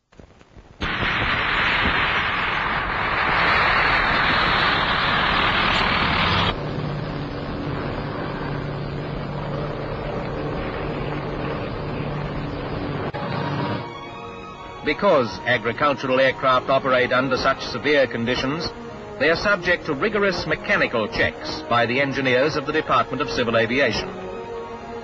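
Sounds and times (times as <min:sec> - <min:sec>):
aircraft engine running: 0:02.7 - 0:25.0.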